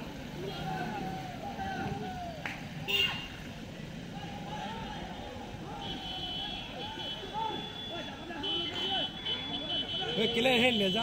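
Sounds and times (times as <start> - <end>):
road traffic noise: 0.0 - 11.0
people's voices: 0.1 - 11.0.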